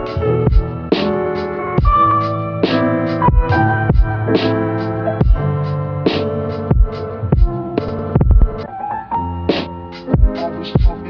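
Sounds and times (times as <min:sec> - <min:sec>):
lo-fi hip-hop beat: 0:00.0 - 0:11.0.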